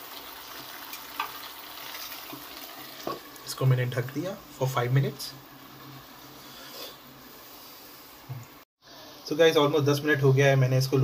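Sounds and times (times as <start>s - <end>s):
pan of food hissing: 0.0s - 10.1s.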